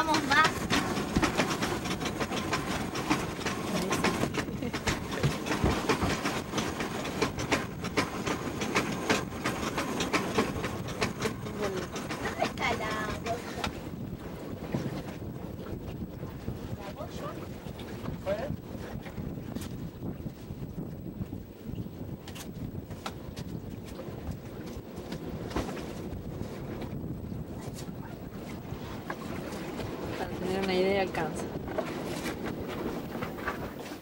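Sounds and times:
boat engine rumble: 0.0s - 34.0s
wind buffeting microphone: 0.0s - 34.0s.

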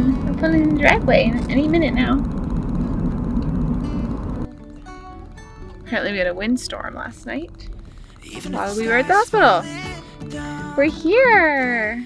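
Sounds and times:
car cabin rumble: 0.0s - 9.8s
soft background music: 4.0s - 12.0s.

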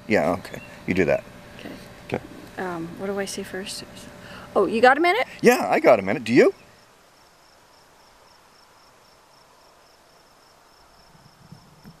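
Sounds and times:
insect chirping: 0.0s - 12.0s.

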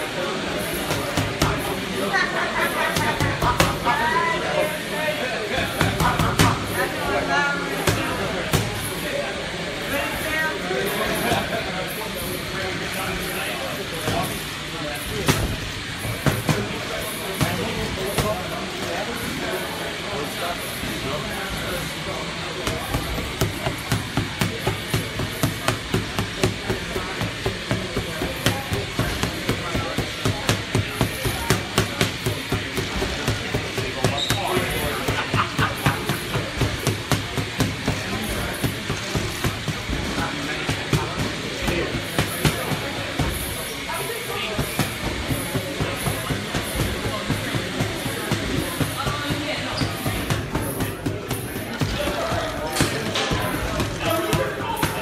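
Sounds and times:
voices: 0.0s - 55.0s.

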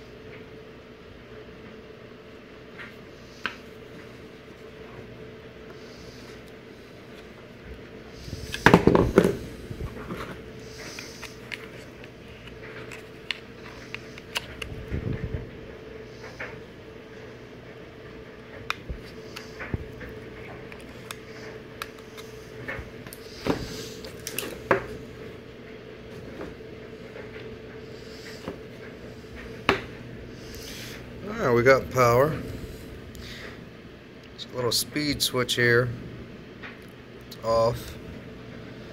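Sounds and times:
steady hum: 0.0s - 38.9s
clicks and knocks of handled plugs: 10.9s - 15.0s, 18.5s - 24.9s.

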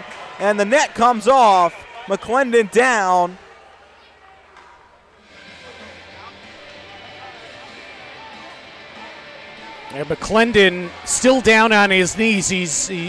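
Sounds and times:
murmur of voices: 0.0s - 13.0s
music over arena speakers: 5.2s - 13.0s.

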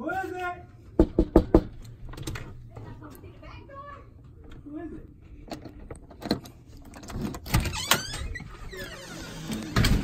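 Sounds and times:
door knocks and clicks: 1.0s - 2.5s
door squeak: 7.4s - 10.0s.

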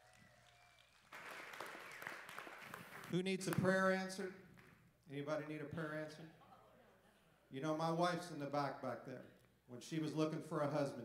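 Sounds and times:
congregation applauding: 0.0s - 3.7s.

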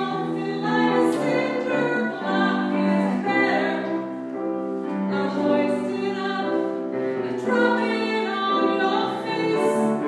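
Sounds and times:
grand piano: 0.0s - 10.0s.

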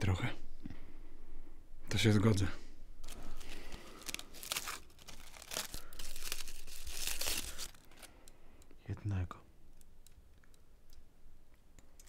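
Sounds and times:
crinkly wrapping tearing: 3.0s - 8.2s.

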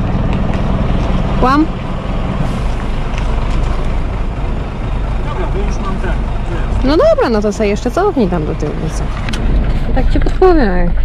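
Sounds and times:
diesel truck engine low revs: 0.0s - 11.0s.

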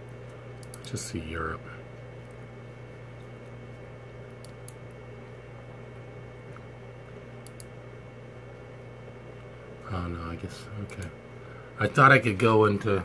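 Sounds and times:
computer mouse clicks: 0.0s - 0.9s, 4.3s - 4.9s, 7.4s - 7.7s, 10.8s - 11.1s
steady low hum: 0.0s - 13.0s.

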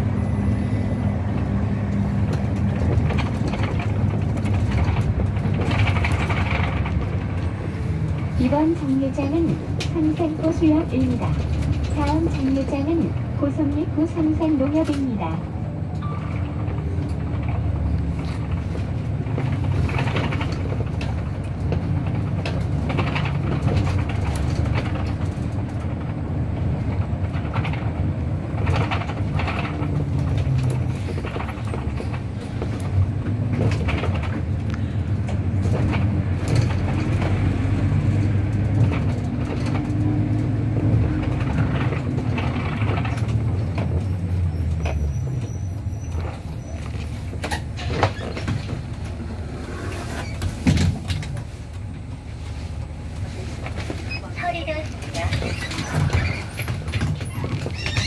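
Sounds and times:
bus engine drone: 0.0s - 58.0s.

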